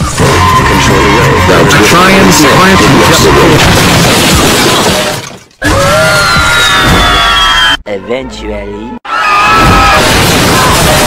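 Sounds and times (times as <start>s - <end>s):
glass shattering: 3.3s - 5.7s, 9.6s - 11.0s
car crash: 3.4s - 5.6s, 9.5s - 11.0s.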